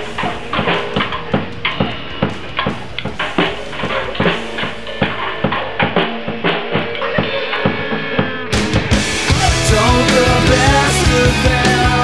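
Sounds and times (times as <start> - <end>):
muffled drum kit bass and snare: 0.0 - 12.0
full-band rock track: 6.4 - 12.0.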